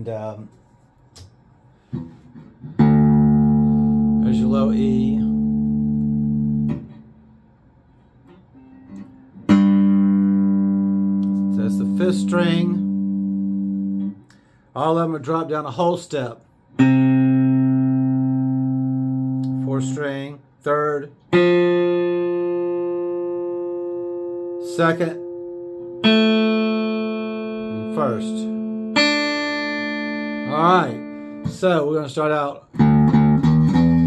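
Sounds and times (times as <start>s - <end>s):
low electric guitar string ringing: 2.6s - 7.2s, 8.5s - 14.2s, 21.3s - 31.6s
guitar effect switch click: 5.9s - 7.0s, 11.1s - 11.5s, 19.3s - 19.7s.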